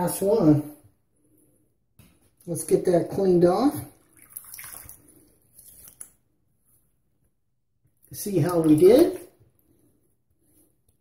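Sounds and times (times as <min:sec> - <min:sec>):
water splashing in sink: 0:03.7 - 0:06.2, 0:08.1 - 0:09.4.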